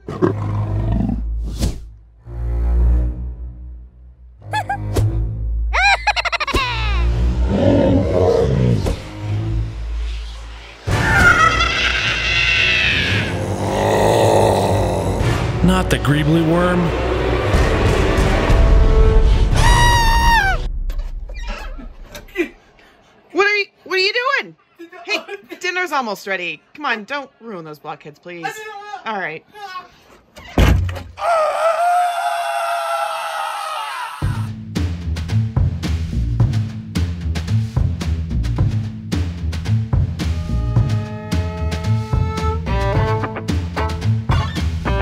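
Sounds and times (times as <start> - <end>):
creature growl: 7.4 - 9.0, 11.1 - 15.5
creature screech: 10.9 - 15.2, 19.6 - 20.6, 31.2 - 34.5.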